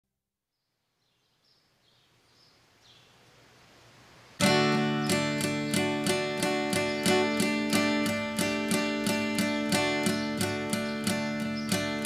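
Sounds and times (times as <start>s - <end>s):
faint hiss: 0.6s - 11.9s.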